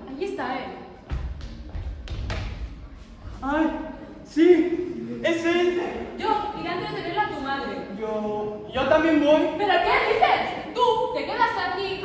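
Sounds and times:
footsteps on stage floor: 1.0 - 3.5
thuds on stage floor: 1.1 - 2.7.

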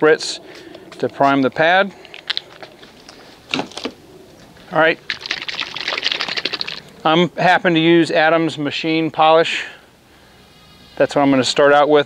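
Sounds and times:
plastic bottle rustling and clicking: 2.0 - 4.0.

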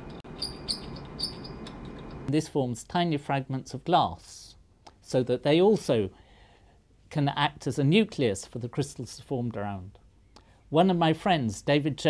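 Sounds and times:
glass rod scraping glass flask: 0.0 - 2.3
high-pitched glass squeaks: 0.0 - 2.3.

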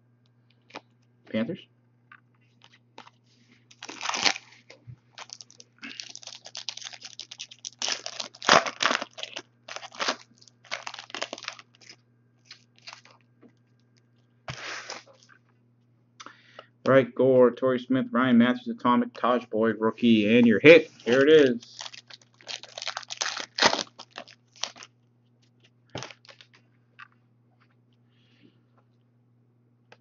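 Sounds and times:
foil wrapper tearing and crinkling: 3.7 - 13.2, 21.0 - 24.9, 26.0 - 26.5.

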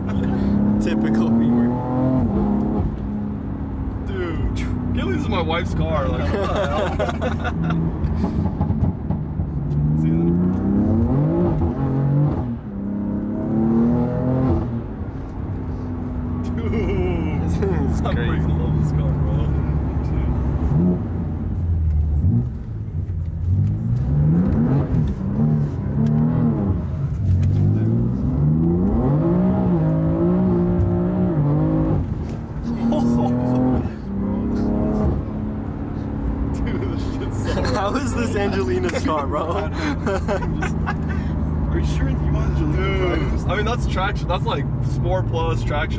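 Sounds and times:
car engine accelerating through gears: 0.0 - 45.9.

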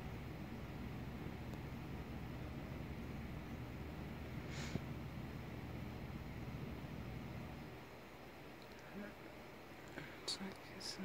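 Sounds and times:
short hisses: 4.4 - 4.8
person whispering: 10.1 - 11.0.

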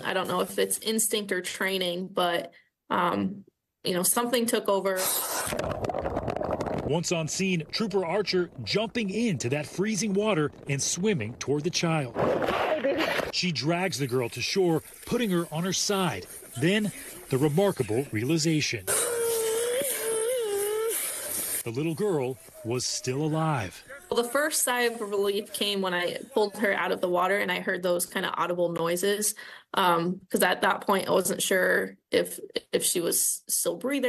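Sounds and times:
water splashing: 5.4 - 19.9
muffled underwater rush: 5.5 - 18.8
girl crying: 18.9 - 21.0.

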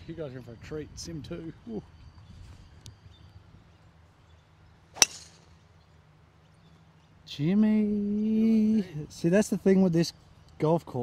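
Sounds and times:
golf driver striking ball: 5.0 - 5.5.

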